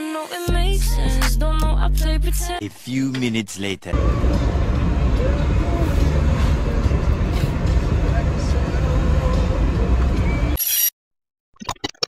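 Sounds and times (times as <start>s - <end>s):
vehicle cabin road rumble: 3.1s - 10.6s
faint passenger voices: 5.0s - 10.0s.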